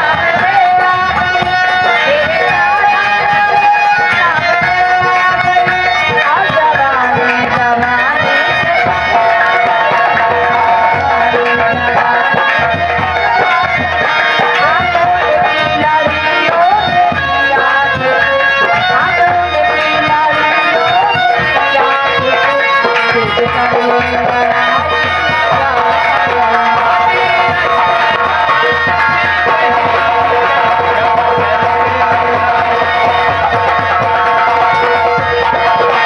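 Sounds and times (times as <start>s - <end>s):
harmonium melody: 0.0s - 36.0s.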